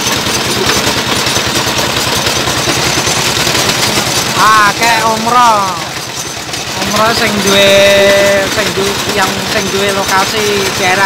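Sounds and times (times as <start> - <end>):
small engine chugging: 0.0 - 11.0.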